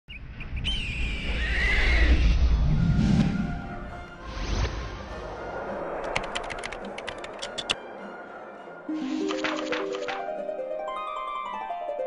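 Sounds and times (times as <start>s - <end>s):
deep soundtrack rumble: 2.1s - 9.3s.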